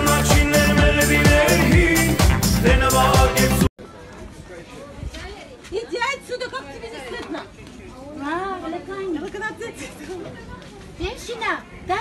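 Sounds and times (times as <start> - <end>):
woman talking: 5.2 - 12.0.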